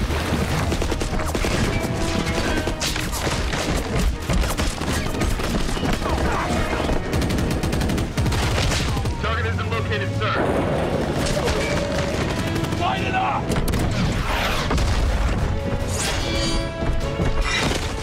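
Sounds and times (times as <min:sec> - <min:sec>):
background score music: 0:00.0 - 0:18.0
rapid automatic gunfire: 0:00.1 - 0:09.2, 0:11.0 - 0:14.5.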